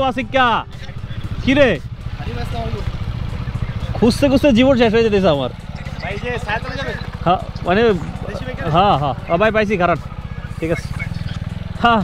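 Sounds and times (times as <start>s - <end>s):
motorcycle engine low revs: 0.7s - 12.0s
man speaking: 4.0s - 9.9s.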